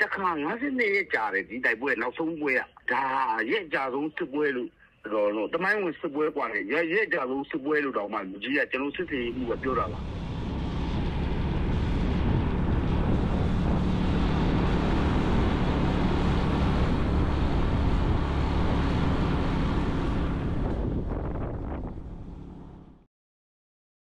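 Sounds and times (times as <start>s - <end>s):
vehicle engine running: 9.0s - 23.0s
wind buffeting microphone: 9.8s - 22.6s.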